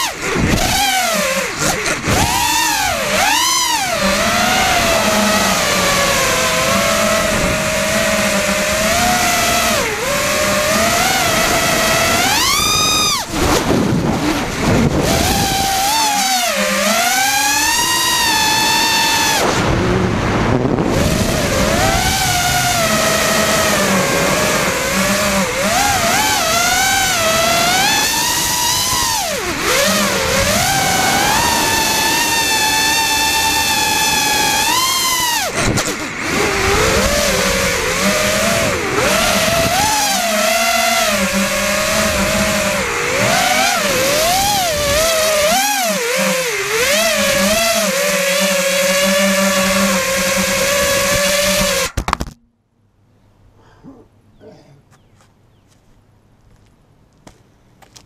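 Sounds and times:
quadcopter motors whining: 0.0 - 52.4.

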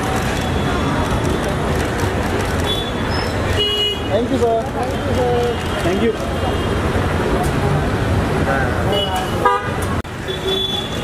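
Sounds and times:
crowd chatter: 0.0 - 11.0
street traffic din: 0.0 - 11.0
car horns honking: 8.9 - 11.0.

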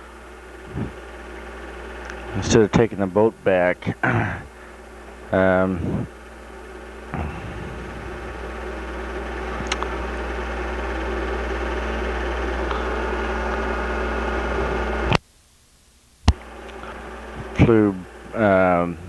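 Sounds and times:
low electrical buzz: 0.0 - 19.0
mechanical hum: 0.0 - 19.0
sharp click: 9.6 - 9.9.

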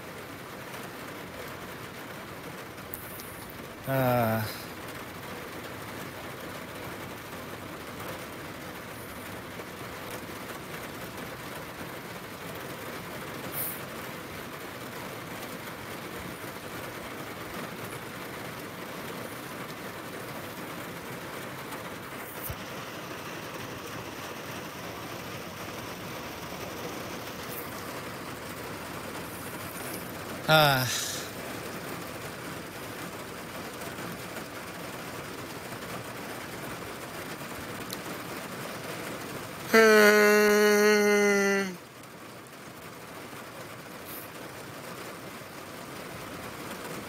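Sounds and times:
heavy rain rushing: 0.0 - 47.0.

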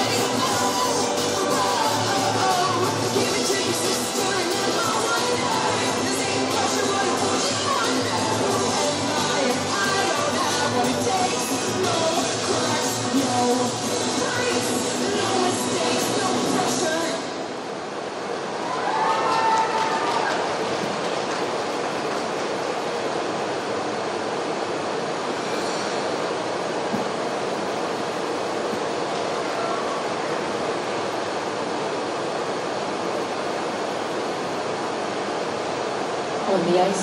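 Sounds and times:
machine-like noise: 0.0 - 37.0.

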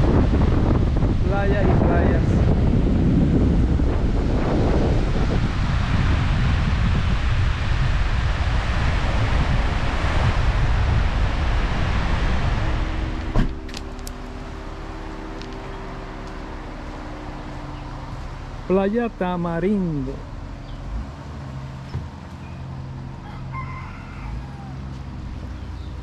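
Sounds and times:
wind buffeting microphone: 0.0 - 18.7
surf breaking on beach: 1.1 - 13.4.

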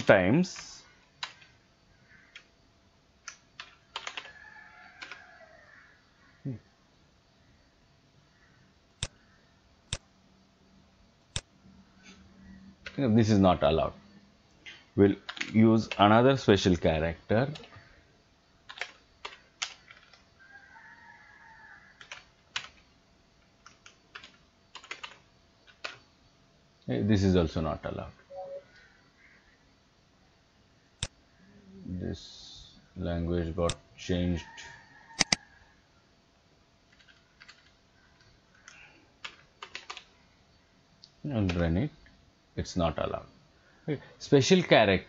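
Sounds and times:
keyboard keys clicking: 3.2 - 4.4, 15.3 - 16.0, 18.7 - 20.2, 22.0 - 22.8, 23.6 - 26.0, 36.9 - 37.7, 38.6 - 40.1.

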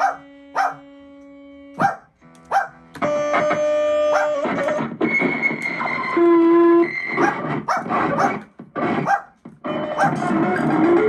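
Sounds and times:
glitchy electronic keyboard tones: 0.0 - 11.0.

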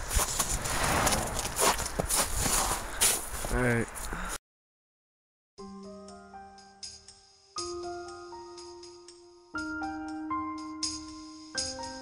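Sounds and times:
footsteps on icy snow: 0.0 - 4.2.

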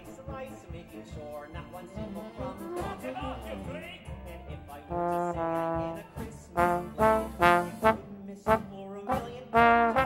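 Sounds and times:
band playing: 0.0 - 10.0
trombone playing: 4.9 - 10.0.

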